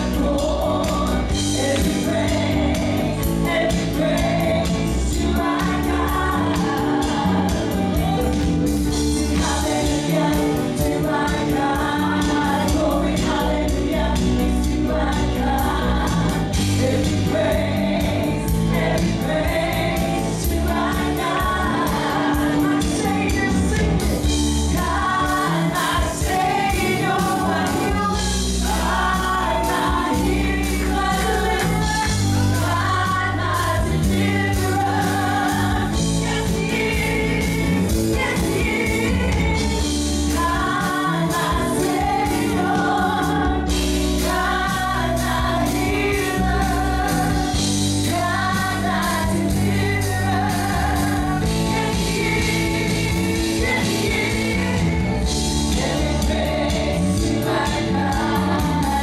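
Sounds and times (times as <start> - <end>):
church band playing: 0.0 - 59.0
drums keeping time: 0.0 - 59.0
electric bass guitar: 0.0 - 59.0
women singing: 0.0 - 59.0.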